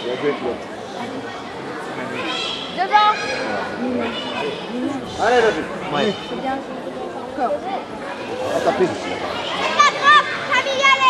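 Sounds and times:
sports hall babble: 0.0s - 11.0s
children shouting: 2.1s - 4.7s, 8.2s - 11.0s.

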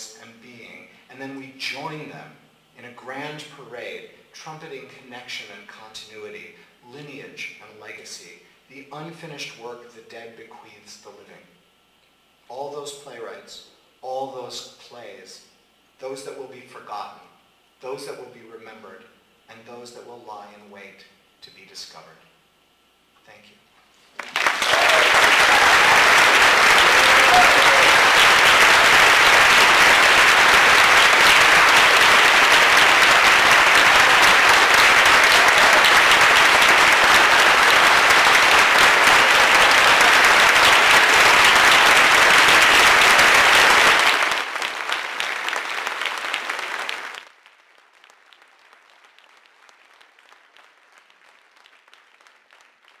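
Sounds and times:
large audience applauding: 24.2s - 53.0s.

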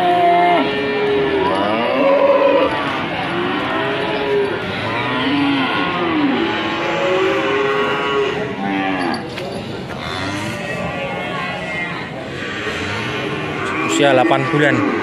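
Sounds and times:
cattle mooing: 0.0s - 9.3s, 12.3s - 15.0s.

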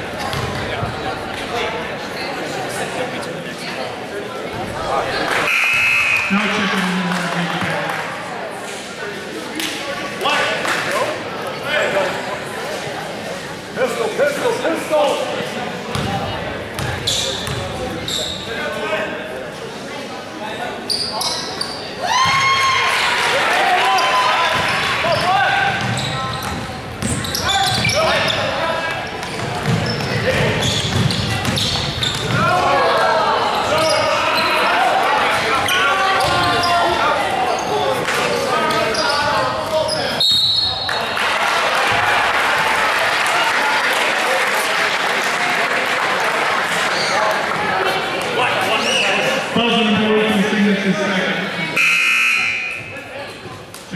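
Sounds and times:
spectators shouting and cheering: 4.6s - 8.6s, 21.9s - 26.2s, 27.3s - 53.1s
high whistle blast: 5.5s - 6.4s, 51.8s - 52.8s.

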